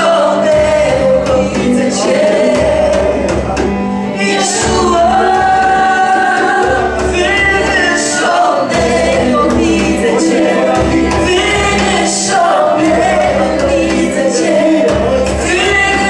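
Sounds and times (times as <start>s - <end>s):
band playing worship music: 0.0s - 16.0s
people singing: 0.0s - 16.0s.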